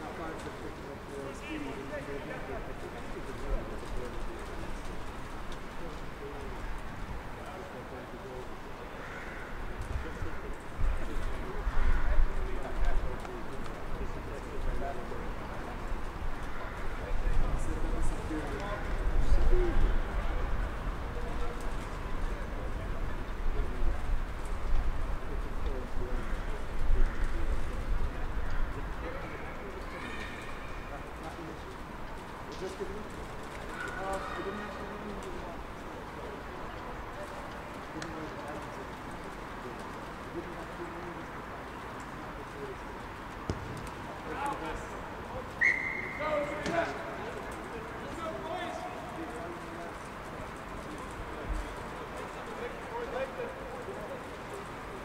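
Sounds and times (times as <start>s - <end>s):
distant players calling: 43.4s - 50.9s.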